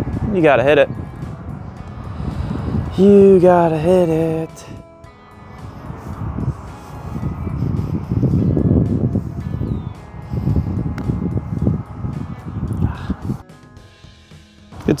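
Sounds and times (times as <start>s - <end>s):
wind rumbling on microphone: 0.0s - 13.4s
soft background music: 0.0s - 15.0s.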